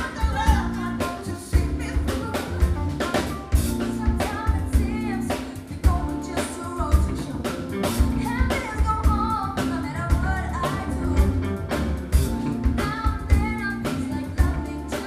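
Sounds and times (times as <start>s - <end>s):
women singing: 0.0s - 11.5s, 12.6s - 15.0s
drum kit beat: 0.0s - 15.0s
live band playing: 0.0s - 15.0s.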